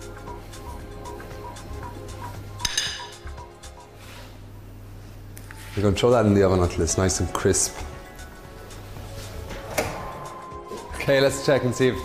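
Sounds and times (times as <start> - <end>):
steady ticking beat: 0.0 - 3.9
background music: 0.0 - 12.0
ceramic bowl clinking: 2.6 - 3.2.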